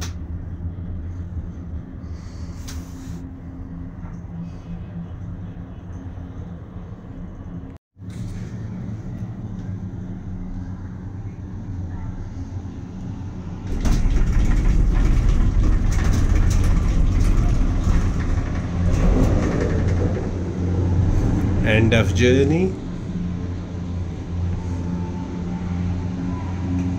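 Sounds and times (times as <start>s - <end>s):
cable car gondola humming: 0.0s - 26.9s
machinery rumbling and clattering: 0.0s - 26.9s.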